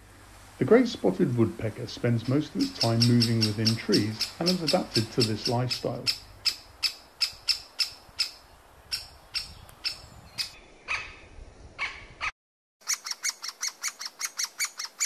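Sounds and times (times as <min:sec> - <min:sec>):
lower harsher bird notes: 0:02.0 - 0:11.3
nestling calling: 0:02.0 - 0:15.0
woodpecker short sharp calls: 0:02.6 - 0:11.2, 0:11.8 - 0:15.0.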